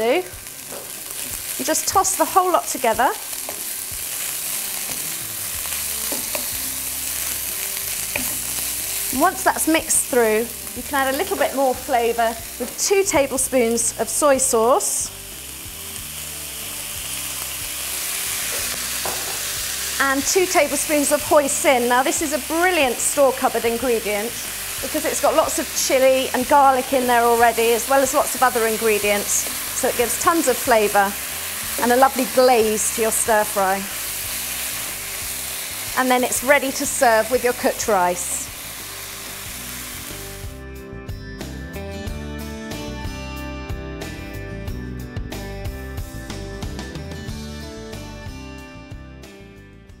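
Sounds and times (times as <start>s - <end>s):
food sizzling in a hot wok: 0.0s - 40.9s
background music: 0.0s - 50.0s.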